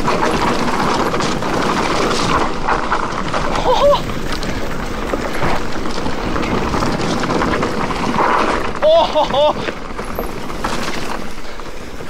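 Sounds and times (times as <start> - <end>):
bike clicks and rattles: 0.0 - 12.0
bike tyre noise: 0.0 - 12.0
rider whooping: 3.4 - 4.3, 8.6 - 9.8.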